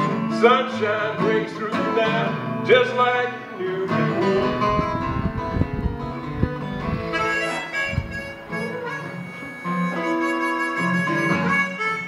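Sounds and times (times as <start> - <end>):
strummed acoustic guitar: 0.0 - 12.0
harmonica playing: 6.8 - 12.0.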